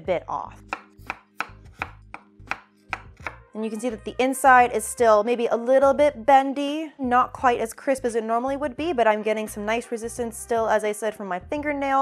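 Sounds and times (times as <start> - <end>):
knife striking wooden cutting board: 0.6 - 3.4.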